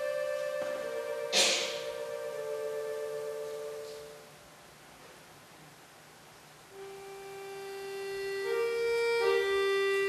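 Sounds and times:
accordion sustained note: 0.0 - 4.5, 6.7 - 10.0.

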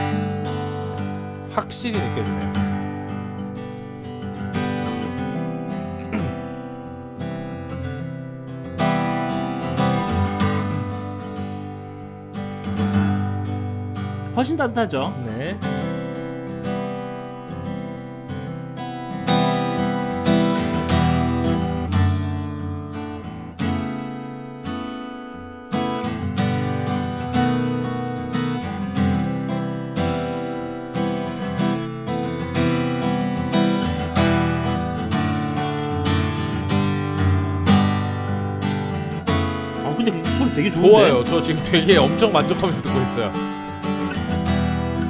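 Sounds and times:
acoustic guitar strummed: 0.0 - 45.0.

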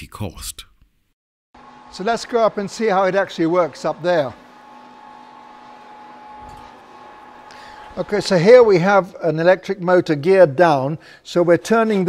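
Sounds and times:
electric motor humming and whining: 1.6 - 9.2.

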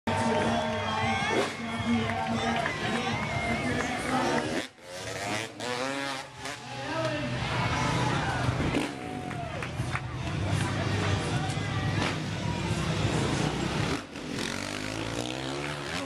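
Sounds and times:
crowd chatter: 0.1 - 16.0
motorcycle engine revving: 0.2 - 16.0.

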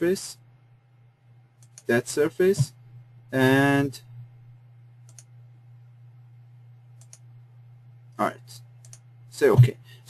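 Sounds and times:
low electrical hum: 0.0 - 10.0
computer mouse clicks: 1.6 - 1.9, 5.0 - 5.3, 7.0 - 7.3, 8.8 - 9.1.

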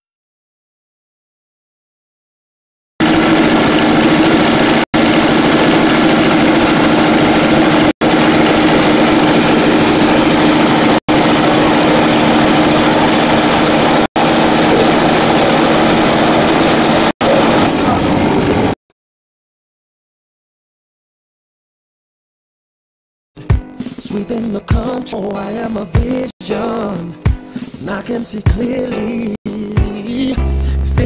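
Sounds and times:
propeller engine droning: 3.0 - 18.8.

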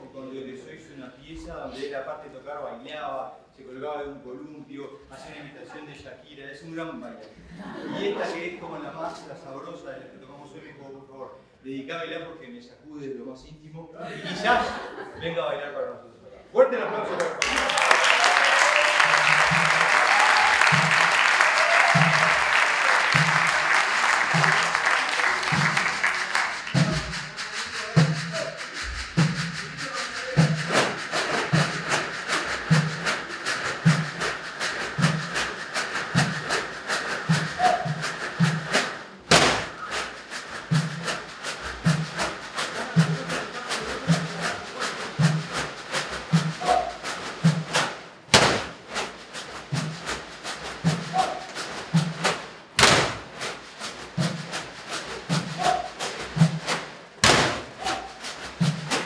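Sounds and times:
audience applause: 17.2 - 38.9
percussion on plastic water jugs: 17.4 - 59.0.

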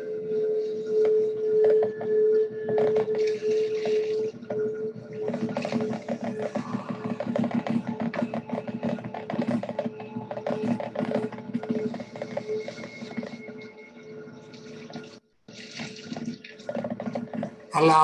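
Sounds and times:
soft pulsing held tone: 0.0 - 15.2
ambient meditation music: 0.0 - 17.2
trickling water: 14.5 - 17.2.

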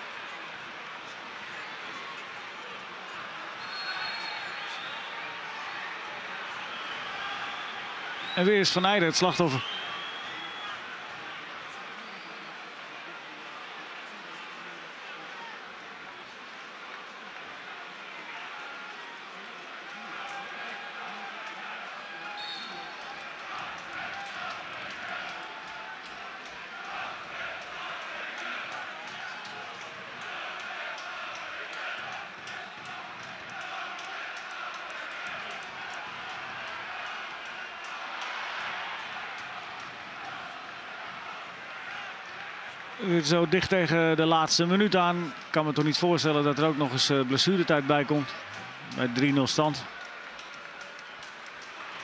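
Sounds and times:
stadium crowd din: 0.0 - 52.0.

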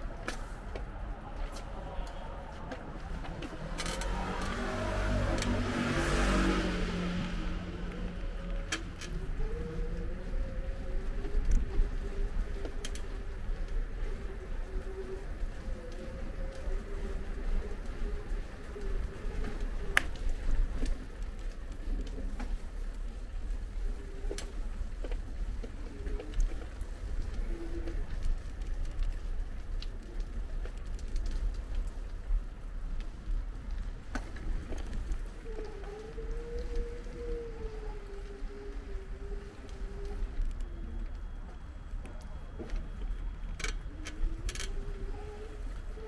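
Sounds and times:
motor vehicle passing: 3.5 - 9.8.

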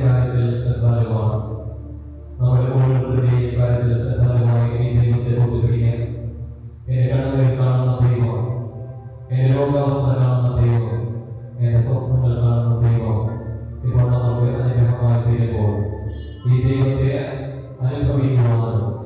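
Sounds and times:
man chanting a prayer: 0.0 - 1.7, 2.4 - 6.2, 6.9 - 8.6, 9.3 - 19.0.

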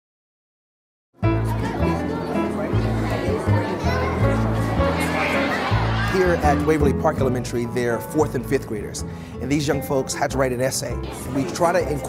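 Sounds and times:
background music with bass: 1.2 - 12.0
children's voices: 1.4 - 6.6.

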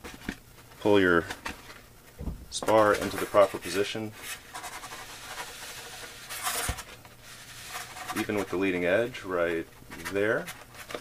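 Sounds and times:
shaft scraping against foam: 2.9 - 9.0.

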